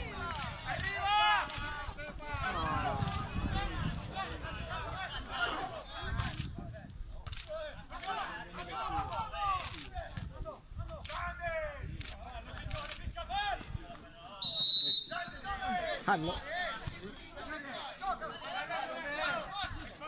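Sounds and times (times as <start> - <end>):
referee's whistle blast: 14.4 - 15.4.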